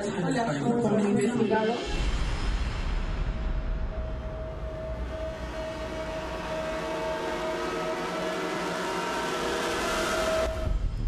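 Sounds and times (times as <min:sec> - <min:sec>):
synthesized drone: 0:00.8 - 0:11.0.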